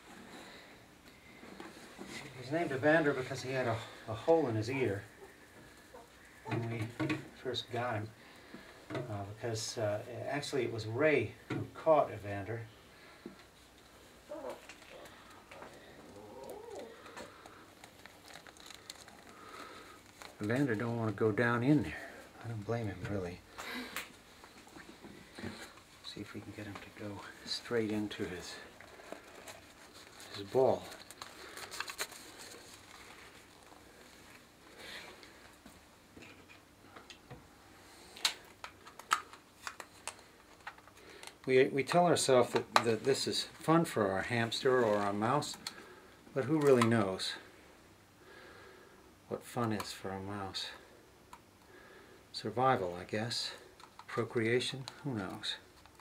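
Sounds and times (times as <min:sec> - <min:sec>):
plastic rustling and crinkling: 0:13.2 - 0:36.7, 0:38.0 - 0:47.5.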